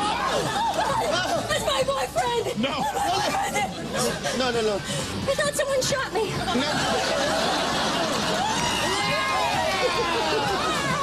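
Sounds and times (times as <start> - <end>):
people talking and exclaiming: 0.0 - 11.0.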